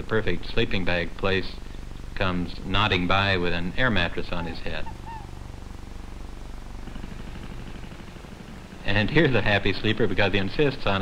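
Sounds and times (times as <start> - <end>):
low hum with fast flutter: 0.0 - 11.0.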